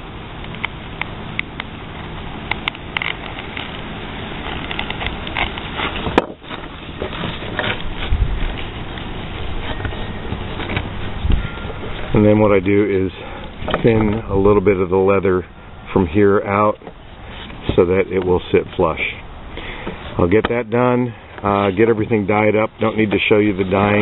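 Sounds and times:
steady background noise: 0.0s - 24.0s
leather handling clicks: 2.4s - 11.2s
knife scraping leather: 4.4s - 11.2s.

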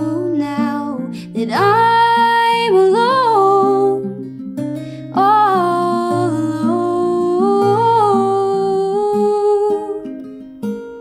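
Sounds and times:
woman singing wordless melody: 0.0s - 10.3s
acoustic guitar: 0.0s - 11.0s.

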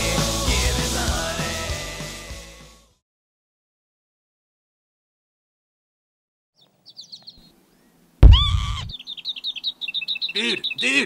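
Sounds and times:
cartoon birds chirping: 6.6s - 7.5s, 8.2s - 11.0s
sudden loud sound: 8.2s - 8.9s.

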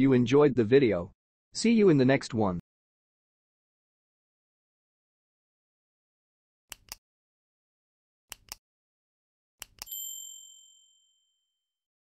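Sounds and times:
mouse clicks: 6.7s - 7.0s, 8.3s - 8.6s, 9.6s - 9.9s
bright bell ding: 9.9s - 11.4s.

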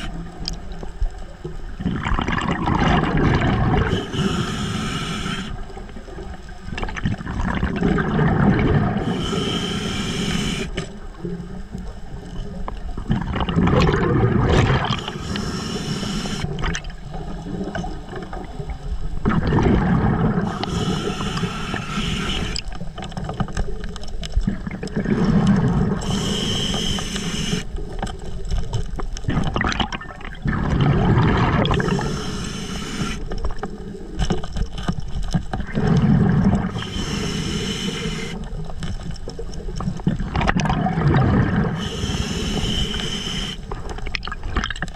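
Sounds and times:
exhaled bubbles underwater: 0.0s - 44.9s
regulator hissing inhale: 3.9s - 5.8s, 8.9s - 11.0s, 14.9s - 16.6s, 20.4s - 22.7s, 25.9s - 27.8s, 31.8s - 33.6s, 36.7s - 38.6s, 41.7s - 43.8s.

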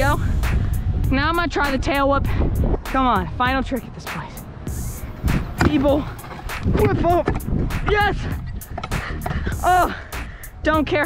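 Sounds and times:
low rumble: 0.0s - 9.7s
scooter clattering over concrete: 5.4s - 9.6s
person shouting: 9.6s - 10.0s.

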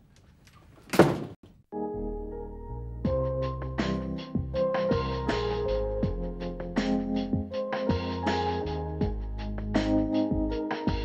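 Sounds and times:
loud thump: 0.9s - 1.4s.

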